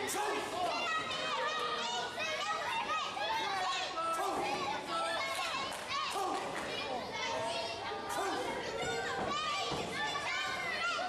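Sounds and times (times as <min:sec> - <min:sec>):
crowd shouting: 0:00.0 - 0:06.9.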